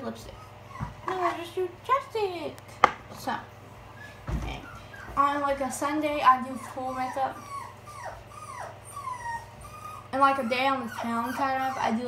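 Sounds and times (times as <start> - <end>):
puppy whining: 0.2 - 1.6, 3.9 - 12.0.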